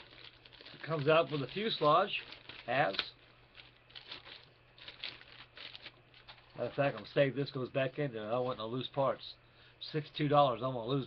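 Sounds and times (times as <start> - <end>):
plastic bag crinkling: 0.0 - 8.7.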